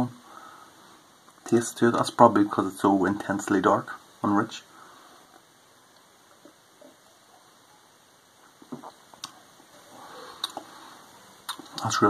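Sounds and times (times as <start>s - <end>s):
man sipping and swallowing: 8.4s - 10.8s
mouth clicks: 10.4s - 10.7s, 11.4s - 11.9s.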